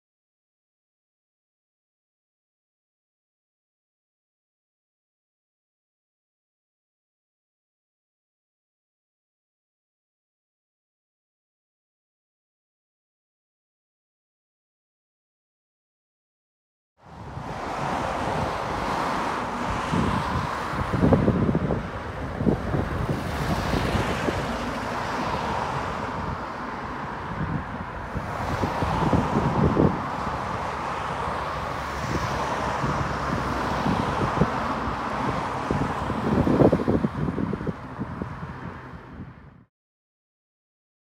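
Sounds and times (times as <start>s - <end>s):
wind buffeting the microphone: 17.1s - 39.7s.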